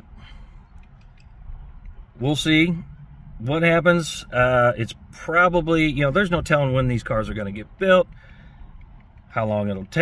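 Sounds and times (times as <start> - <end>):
low rumble inside car cabin: 0.0 - 10.0.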